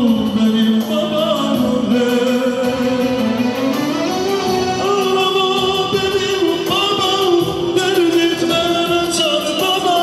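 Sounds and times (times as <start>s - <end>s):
electronic keyboard accompaniment: 0.0s - 10.0s
man singing through microphone: 0.0s - 10.0s.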